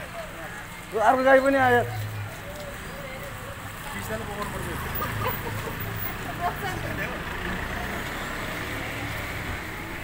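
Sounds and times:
faint voices: 0:00.0 - 0:10.0
street noise: 0:00.0 - 0:10.0.

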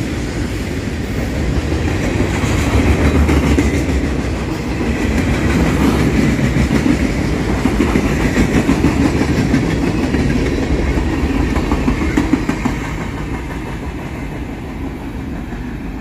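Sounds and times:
freight train wheels on rails: 0:00.0 - 0:16.0.

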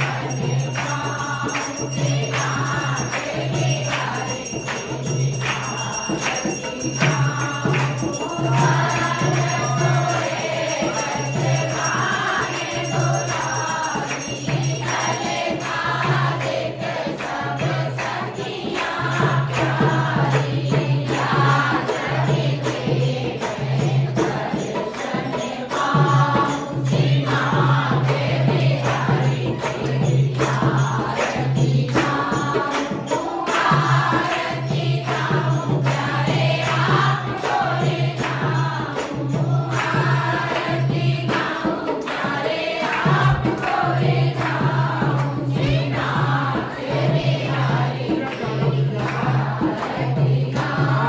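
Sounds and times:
group singing a devotional hymn: 0:00.0 - 0:51.0
repeating percussion beat: 0:00.0 - 0:51.0.

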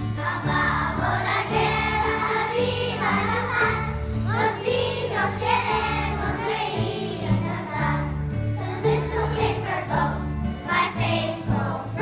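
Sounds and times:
children's choir singing: 0:00.0 - 0:12.0
piano: 0:00.0 - 0:12.0.

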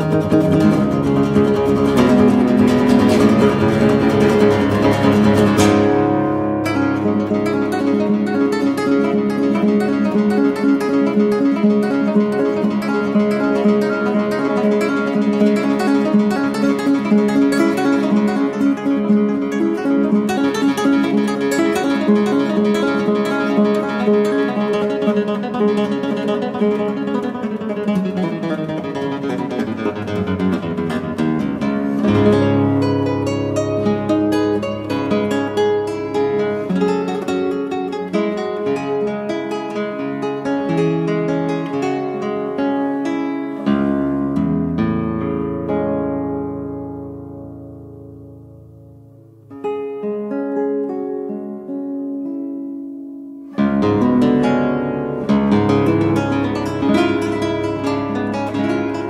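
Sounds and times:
classical guitar arpeggios: 0:00.0 - 0:59.0.

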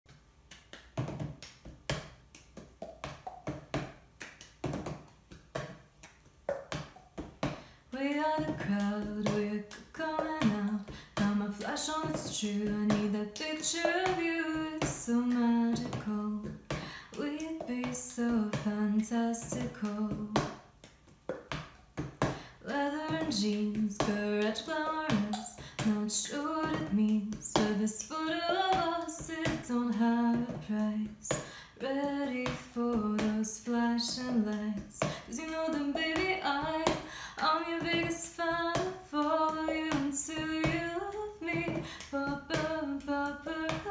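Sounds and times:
hand claps: 0:00.1 - 0:18.8, 0:19.4 - 0:43.9
hands clapping: 0:00.5 - 0:11.3.

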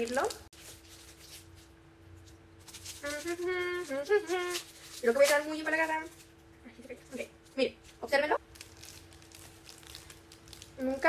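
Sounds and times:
plastic wrapper crinkling: 0:00.0 - 0:01.6, 0:07.9 - 0:11.0
faint steady hum: 0:00.0 - 0:11.0
girl humming a tune: 0:03.0 - 0:04.6.

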